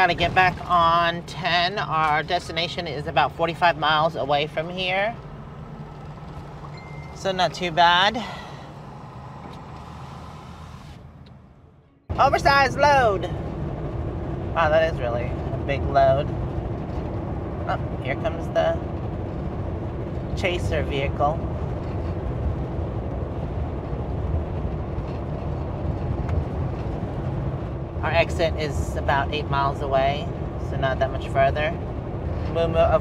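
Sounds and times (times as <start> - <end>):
truck passing: 0.0 - 33.0
vehicle engine idling: 0.0 - 33.0.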